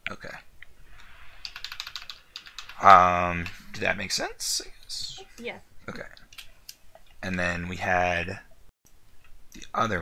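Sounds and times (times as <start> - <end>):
typing on computer keyboard: 1.4 - 2.8.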